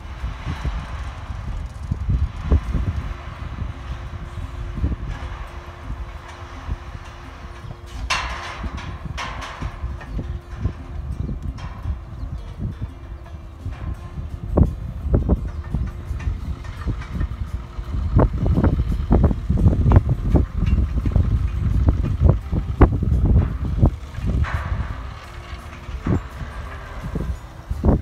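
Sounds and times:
distant dragline engine: 0.0 - 28.0
wind rumbling on microphone: 0.0 - 28.0.

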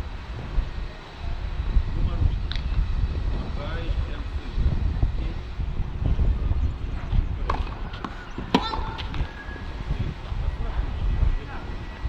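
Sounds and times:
wind rumbling on microphone: 0.0 - 12.0
distant voices: 0.1 - 12.0.

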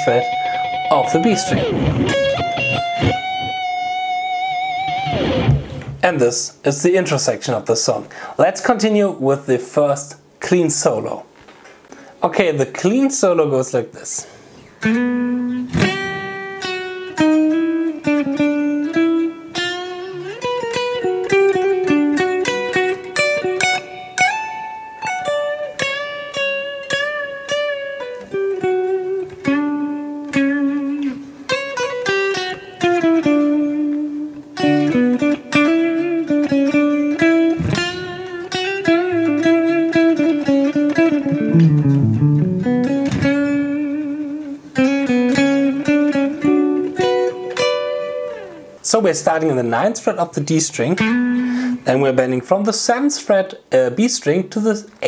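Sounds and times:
clean electric guitar solo: 0.0 - 6.0, 14.8 - 48.8, 51.0 - 51.8.

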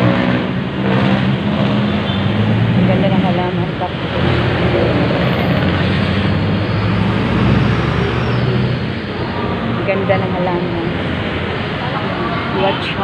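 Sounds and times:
road noise: 0.0 - 13.0.

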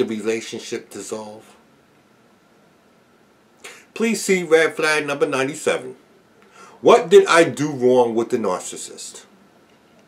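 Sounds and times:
man speaking: 0.0 - 1.6, 3.7 - 6.0, 6.8 - 9.3
sharp intake of breath: 3.6 - 4.0, 6.4 - 6.8.

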